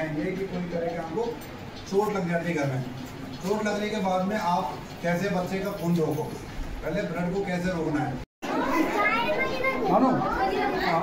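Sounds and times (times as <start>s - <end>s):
children chattering: 8.4s - 11.0s.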